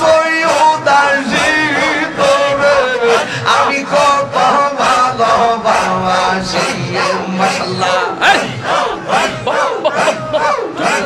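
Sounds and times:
men chanting in unison: 0.0s - 11.0s.

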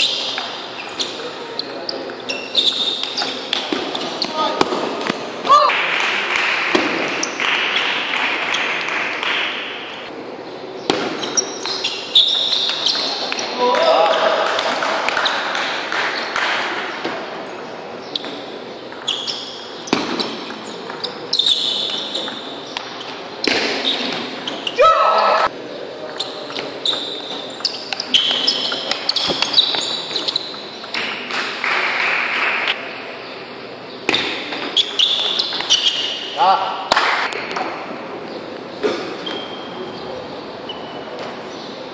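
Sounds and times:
table tennis ball bouncing: 10.9s - 24.5s, 26.1s - 32.7s.

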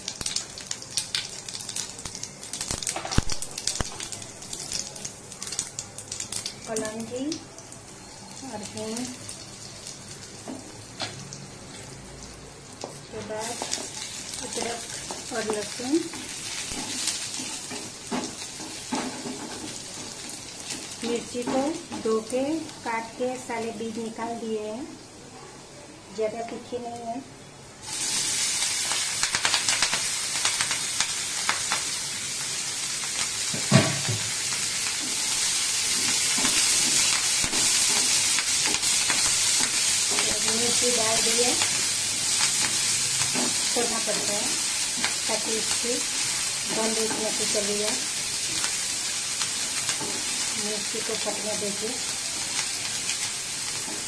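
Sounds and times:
seeds sizzling in hot oil: 0.0s - 25.0s, 26.2s - 54.0s.

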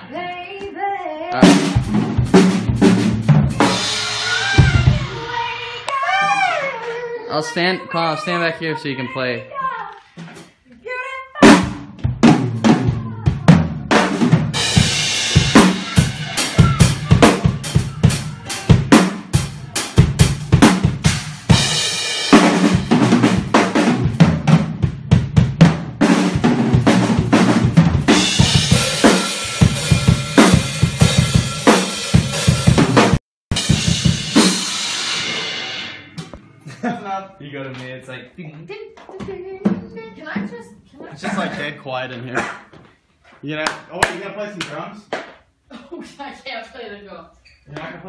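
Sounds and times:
fast drum kit playing: 1.4s - 6.2s, 11.4s - 37.1s.

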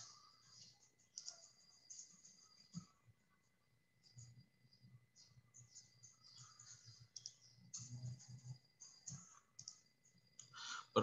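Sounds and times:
faint clicks and taps: 0.0s - 10.6s.

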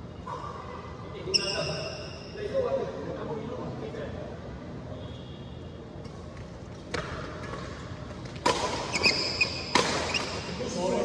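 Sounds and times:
sports shoe squeaking on court floor: 1.3s - 2.4s, 8.6s - 10.6s.

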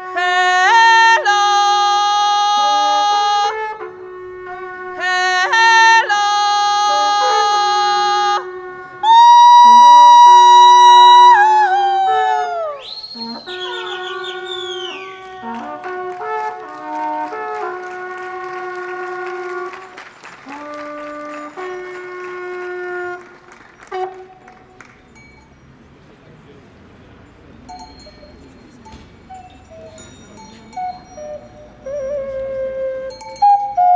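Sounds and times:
wooden horn high calls: 0.0s - 25.0s.

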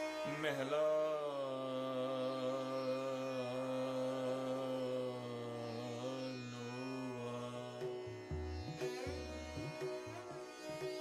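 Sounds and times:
bowed string instrument note: 7.7s - 11.0s.

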